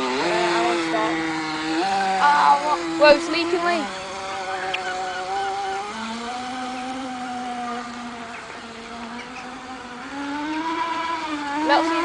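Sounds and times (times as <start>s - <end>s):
model jet boat buzzing whine: 0.0s - 12.0s.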